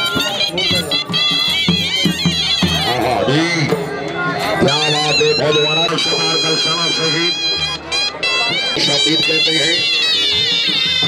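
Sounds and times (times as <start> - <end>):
dhol drumming: 0.0 - 11.0
shehnai melody: 0.0 - 11.0.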